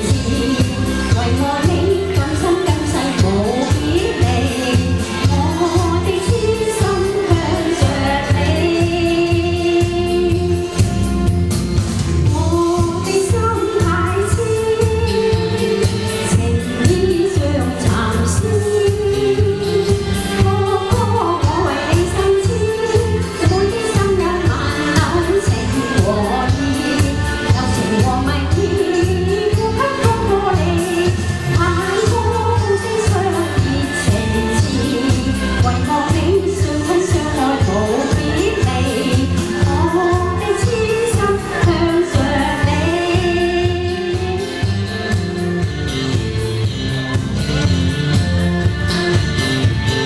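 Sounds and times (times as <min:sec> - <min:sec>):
woman singing into a microphone: 0:00.0 - 0:11.2, 0:12.2 - 0:45.1
pop accompaniment with steady beat: 0:00.0 - 0:50.0.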